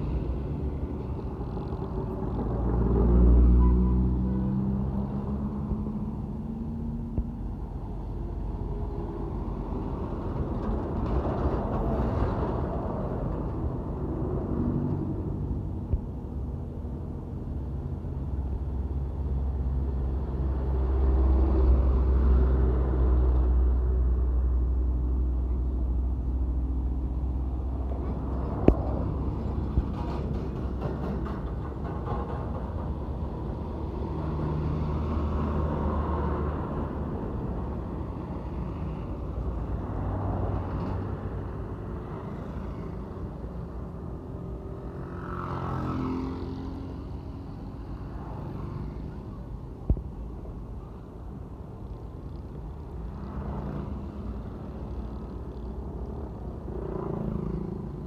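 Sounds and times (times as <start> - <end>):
heavy trucks passing: 0.0 - 58.0
traffic noise: 0.0 - 58.0.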